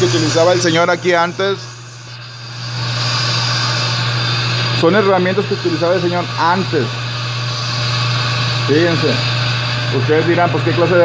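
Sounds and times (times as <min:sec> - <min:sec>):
machinery humming: 0:00.0 - 0:11.0.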